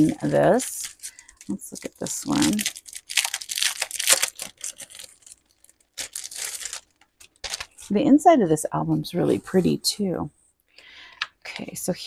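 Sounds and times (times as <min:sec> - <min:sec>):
paper rustling and scraping: 0:00.0 - 0:07.9.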